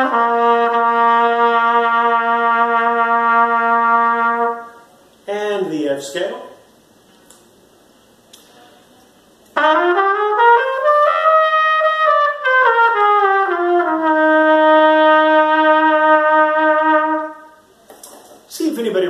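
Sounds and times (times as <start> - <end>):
trumpet playing a scale: 0.0 - 4.9, 9.5 - 17.7.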